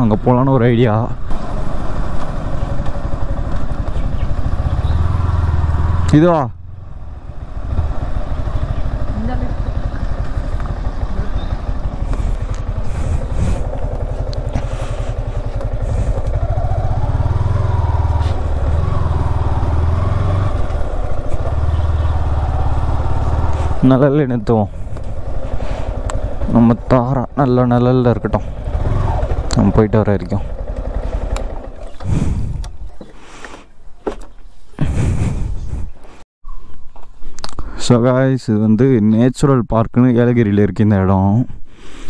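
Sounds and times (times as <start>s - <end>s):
motorcycle engine running: 0.0s - 32.9s.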